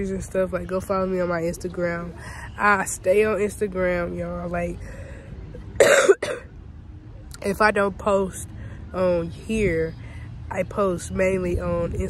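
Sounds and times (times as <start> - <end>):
woman coughing: 5.8 - 6.5.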